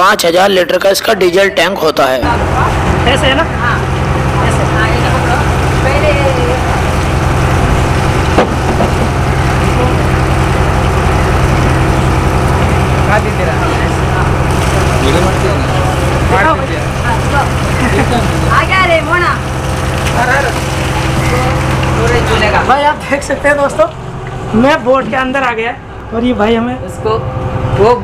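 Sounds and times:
engine idling: 2.2 - 28.0.

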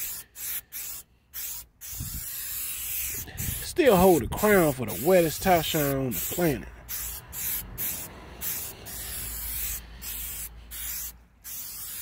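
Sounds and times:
aerosol spray hissing: 0.0 - 3.8, 4.9 - 12.0.

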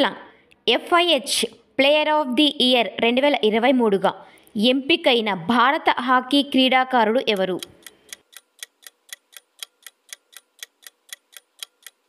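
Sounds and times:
clock ticks: 7.3 - 12.0.

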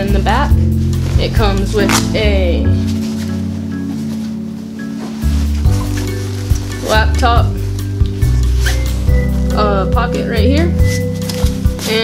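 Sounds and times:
bossa nova background music: 0.0 - 12.0
fabric rustling: 0.0 - 12.0
backpack unzipping: 1.0 - 2.2.

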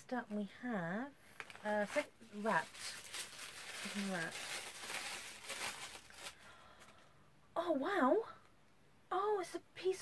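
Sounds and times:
tissue paper crinkling: 1.3 - 6.6.

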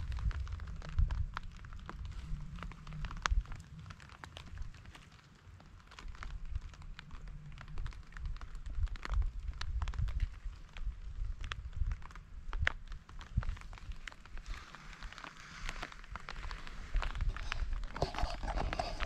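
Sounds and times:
raindrops ticking: 0.0 - 19.0
steady low rumble: 0.0 - 19.0.

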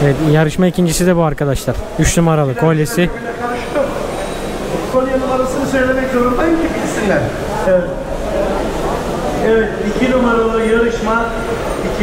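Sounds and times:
crowd chatter in a large hall: 0.0 - 12.0.

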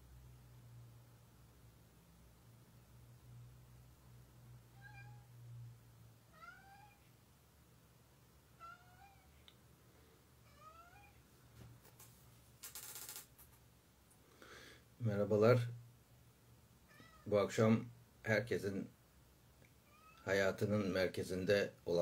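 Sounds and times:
cat meowing faintly: 4.7 - 5.4, 6.3 - 7.1, 8.6 - 9.4, 10.4 - 11.2, 16.9 - 17.3, 19.8 - 20.3
brief rustle: 11.5 - 13.6.

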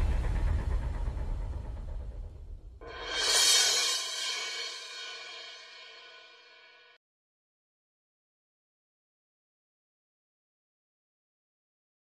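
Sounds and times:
deep boom: 0.0 - 6.3
shimmering metallic swell: 2.8 - 7.0.

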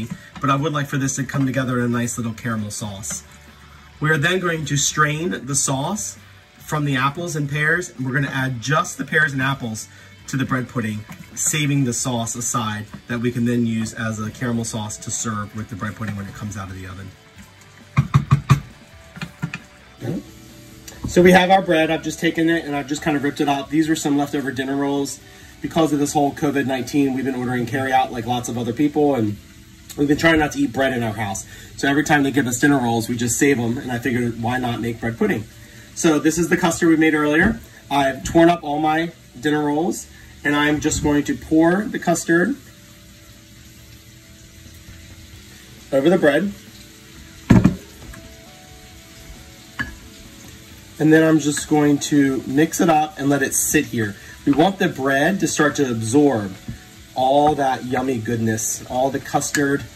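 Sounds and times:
fruit sizzling in caramel: 0.0 - 59.9
spoon knocking against saucepan: 17.9 - 19.7.

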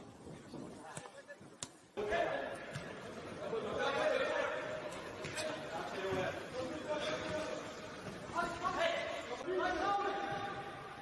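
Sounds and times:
open-air field ambience: 0.0 - 11.0.

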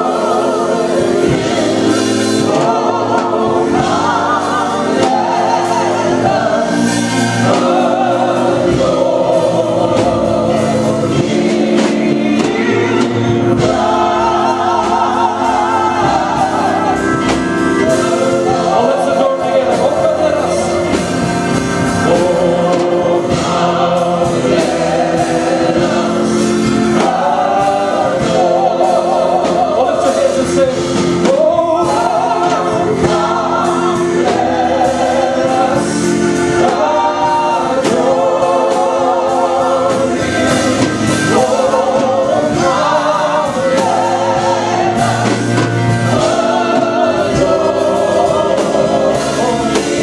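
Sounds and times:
choir singing in harmony: 0.0 - 50.0
electric keyboard: 0.0 - 50.0.

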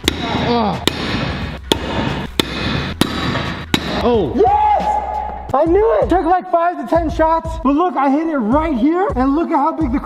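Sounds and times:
pickaxe striking brick wall: 0.0 - 4.1.

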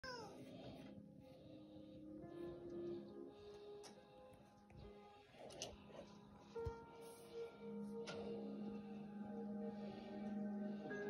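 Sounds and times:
soft sustained music tones: 0.1 - 11.0.

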